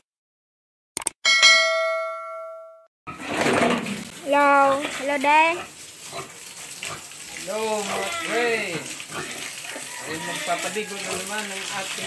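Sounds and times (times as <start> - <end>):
bright bell ding: 1.2 - 2.8.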